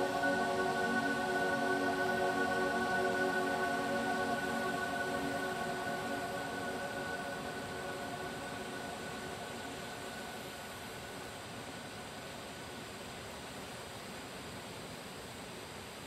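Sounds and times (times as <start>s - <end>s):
ambient music tones: 0.0s - 11.3s
steady hiss: 0.0s - 16.0s.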